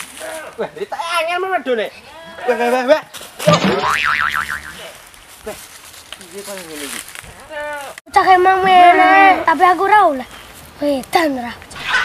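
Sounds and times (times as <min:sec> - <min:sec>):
cartoon boing: 0:03.5 - 0:04.8.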